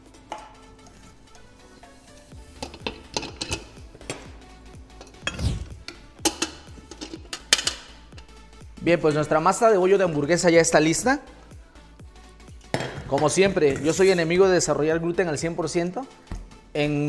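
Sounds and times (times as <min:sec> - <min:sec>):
faint background music: 0:00.0 - 0:17.0
metal bowls and utensils clinking: 0:02.5 - 0:08.3, 0:12.6 - 0:14.4.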